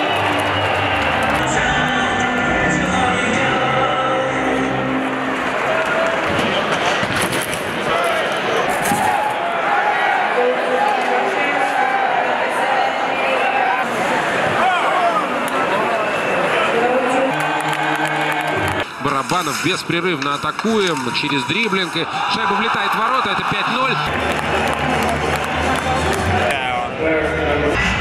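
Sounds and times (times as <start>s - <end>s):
crowd chanting and shouting: 0.0s - 28.0s
hockey sticks and puck knocking: 18.6s - 21.7s.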